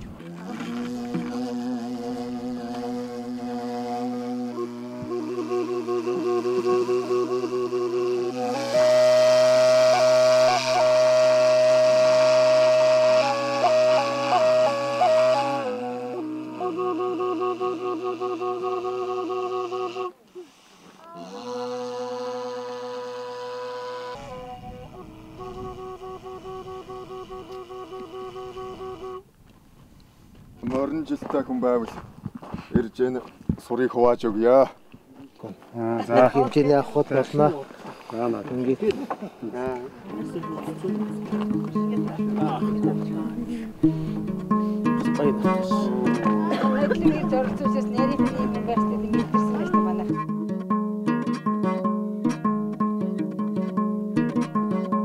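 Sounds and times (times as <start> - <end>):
low hummed drone: 0.0 - 8.4
end-blown wooden flute: 0.0 - 29.3.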